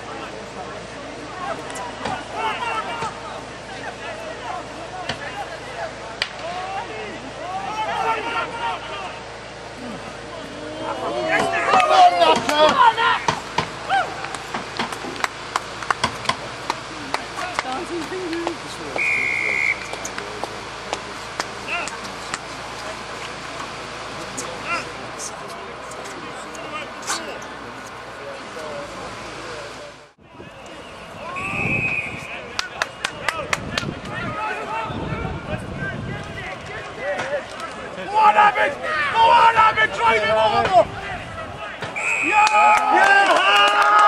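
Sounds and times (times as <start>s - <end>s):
players and spectators shouting: 0.0s - 29.2s, 30.2s - 44.0s
referee's whistle blast: 19.0s - 20.1s, 30.8s - 32.5s, 42.0s - 43.0s.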